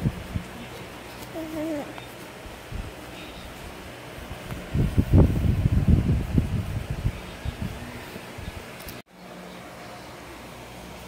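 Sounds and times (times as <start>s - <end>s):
microphone handling rumble: 4.4s - 7.9s.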